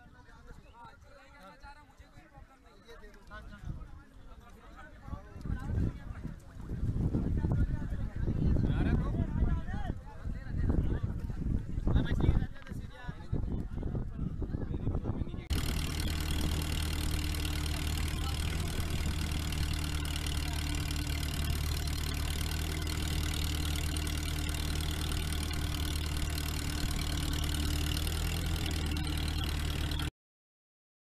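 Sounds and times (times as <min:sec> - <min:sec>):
engine running steadily: 0:15.5 - 0:30.1.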